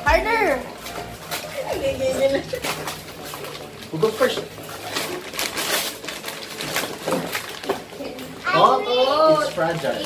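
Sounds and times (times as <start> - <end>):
wrapping paper ripping: 0.6 - 10.0.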